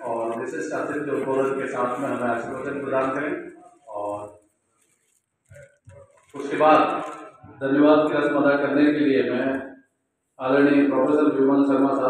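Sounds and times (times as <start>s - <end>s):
man's amplified speech: 0.0s - 4.4s, 6.4s - 9.7s, 10.4s - 12.0s.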